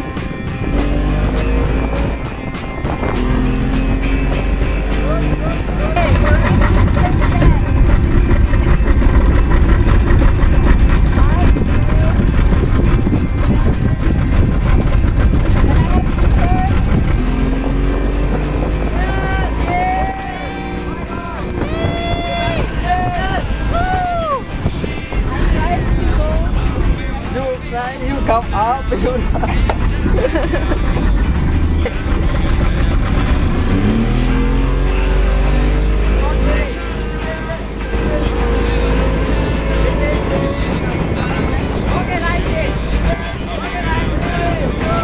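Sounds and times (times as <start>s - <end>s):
outboard motor accelerating: 0.0s - 45.0s
rushing water and wind: 0.0s - 45.0s.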